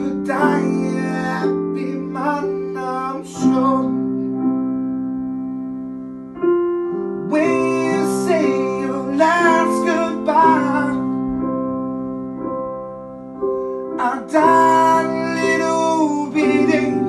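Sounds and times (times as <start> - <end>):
man singing: 0.0 - 4.1, 7.2 - 11.2, 14.0 - 17.0
piano playing sustained chords: 0.0 - 17.0.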